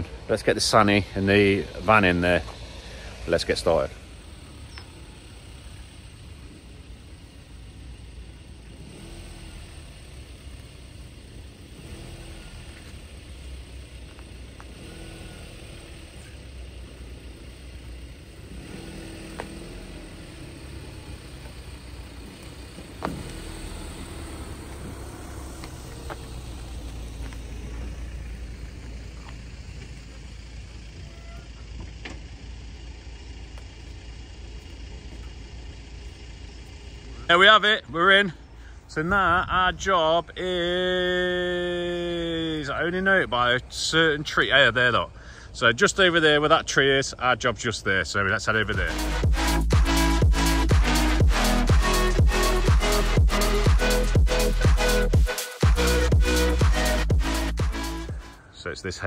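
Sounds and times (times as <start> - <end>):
van engine rumbling: 0.0 - 59.0.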